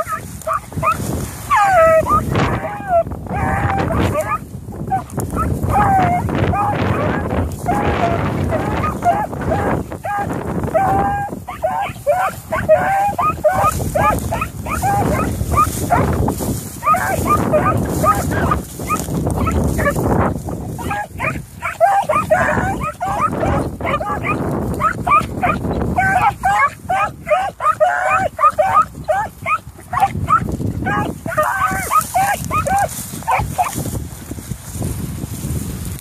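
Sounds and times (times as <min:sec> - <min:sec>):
beagles baying: 0:00.0 - 0:20.1, 0:20.7 - 0:33.8
wind rumbling on microphone: 0:00.0 - 0:36.0.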